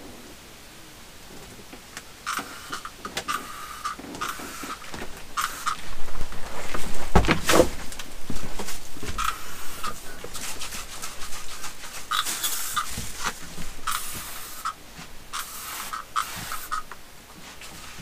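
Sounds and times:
aerosol spray can hissing: 2.3s - 4.8s, 5.4s - 5.8s, 11.0s - 13.0s, 13.8s - 16.9s.

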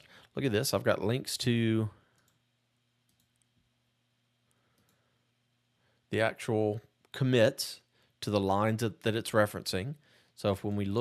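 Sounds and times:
faint computer mouse clicks: 4.7s - 5.0s.

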